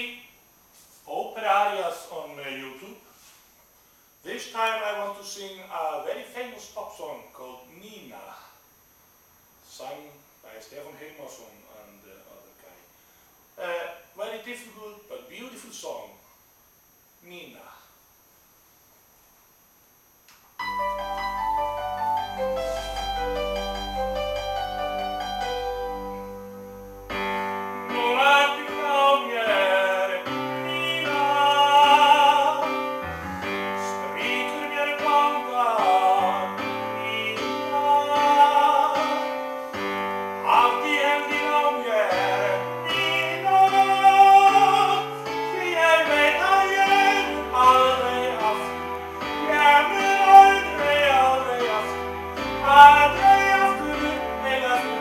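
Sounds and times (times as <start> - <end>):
keyboard backing track: 20.6 - 55.0
man singing operatic pop ballad: 27.9 - 32.8, 33.8 - 39.3, 40.4 - 55.0.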